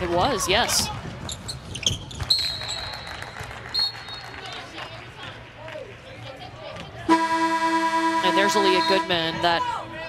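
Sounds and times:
sneaker squeaks: 1.3 - 2.7
players calling out: 7.1 - 10.0.

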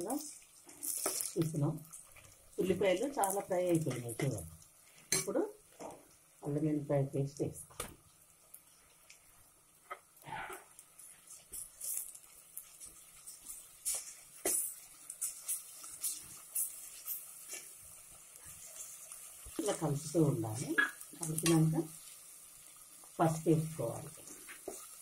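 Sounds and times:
onions sizzling in oil: 0.0 - 25.0.

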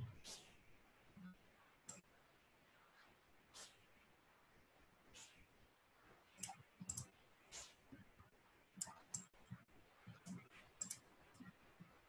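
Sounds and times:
faint computer mouse clicks: 6.4 - 7.1, 10.1 - 11.5.

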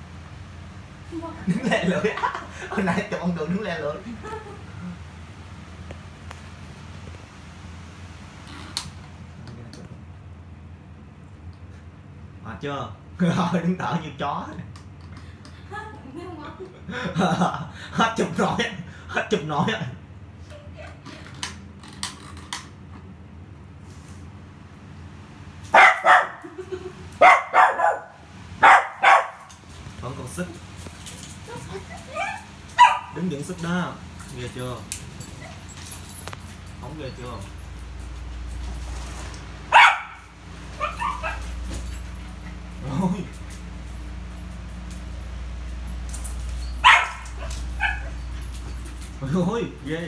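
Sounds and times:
dog barking: 25.7 - 26.4, 27.2 - 29.5, 32.1 - 33.2, 39.7 - 41.5, 46.8 - 48.2.

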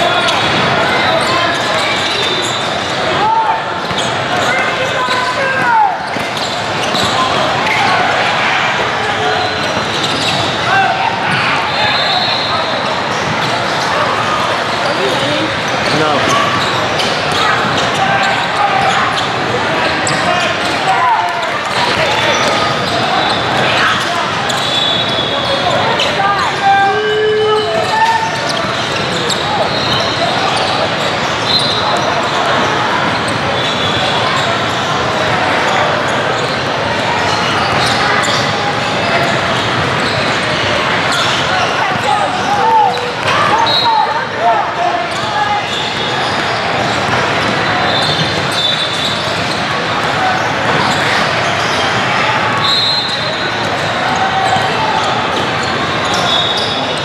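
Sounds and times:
din of many voices: 0.0 - 57.0.

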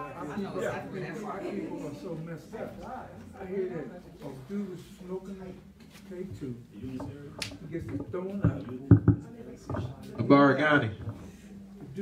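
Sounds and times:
dull knocks: 6.9 - 9.9.

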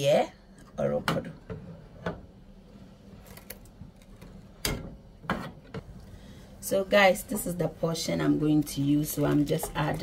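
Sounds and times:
spatula knocking and scraping pot: 9.4 - 10.0.

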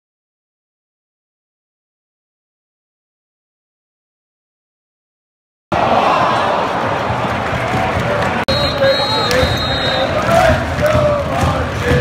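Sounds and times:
stadium crowd singing and chanting: 5.7 - 12.0.

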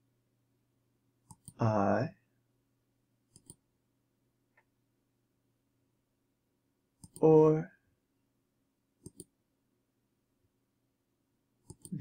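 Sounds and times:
computer mouse clicks: 1.2 - 1.6, 3.3 - 3.6, 7.0 - 7.3, 9.0 - 9.4, 11.6 - 12.0.

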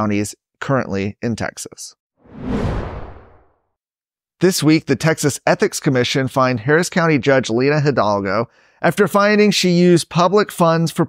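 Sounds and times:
whoosh sound effect: 2.2 - 3.6
low rumble: 2.3 - 3.5.

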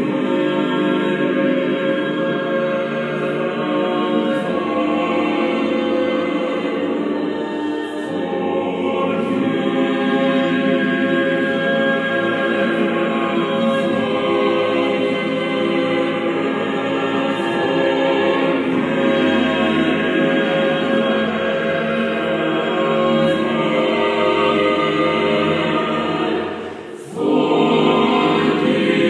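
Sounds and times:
choir singing slow chords: 0.0 - 29.0.

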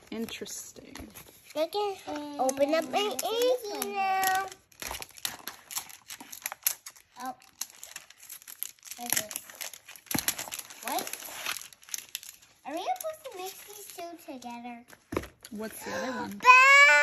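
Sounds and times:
plastic wrapping crinkling and tearing: 0.0 - 17.0
child vocal sounds: 1.8 - 4.6, 15.8 - 17.0.

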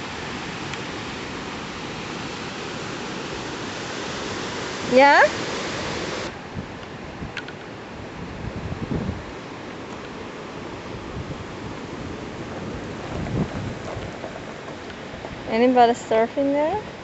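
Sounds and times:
surf breaking on rocks: 0.0 - 6.4, 10.9 - 17.0
wind on microphone: 0.0 - 9.5, 10.6 - 17.0.

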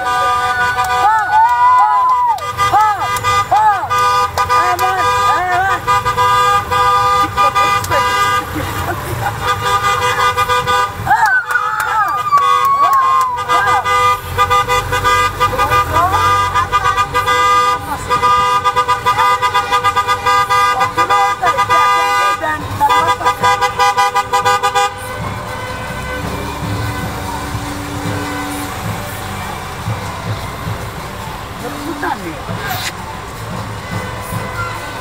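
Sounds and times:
car engines: 0.0 - 35.0
car horns honking: 0.0 - 35.0
street noise: 0.0 - 35.0.

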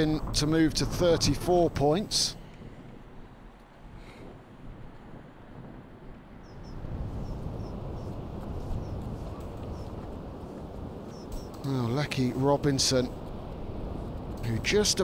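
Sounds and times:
wind on microphone: 0.0 - 15.0
faint bird chirping: 6.4 - 10.0, 11.1 - 11.6.

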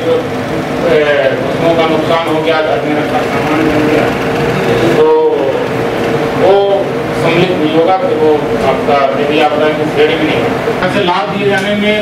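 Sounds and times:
man speaking into a microphone: 6.4 - 12.0.

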